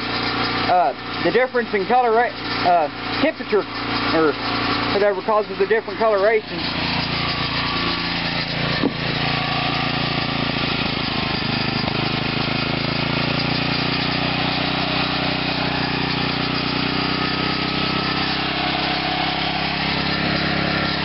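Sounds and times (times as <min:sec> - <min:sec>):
small engine running steadily: 0:00.0 - 0:21.0.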